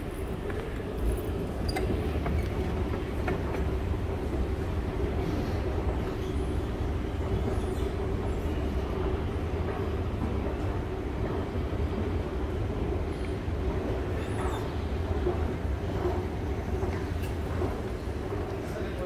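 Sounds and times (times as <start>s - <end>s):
escalator rumbling: 0.0s - 19.0s
indoor shopping area hum: 0.0s - 19.0s.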